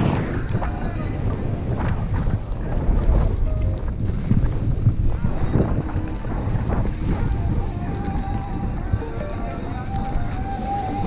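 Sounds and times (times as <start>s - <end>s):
skis sliding on snow: 0.0s - 10.8s
wind buffeting microphone: 0.0s - 11.0s.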